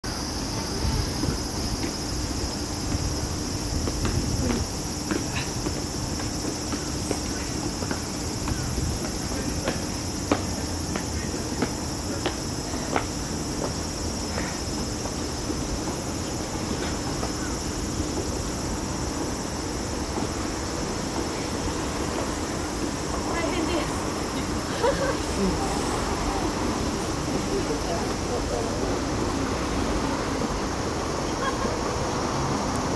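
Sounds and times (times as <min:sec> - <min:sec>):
high-pitched insect chorus: 0:00.0 - 0:32.9
footsteps on stone steps: 0:00.5 - 0:25.1.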